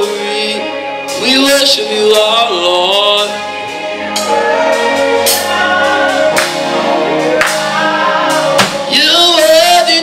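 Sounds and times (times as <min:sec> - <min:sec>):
man singing gospel song: 0:00.0 - 0:03.8, 0:05.2 - 0:10.0
keyboard accompaniment: 0:00.0 - 0:10.0.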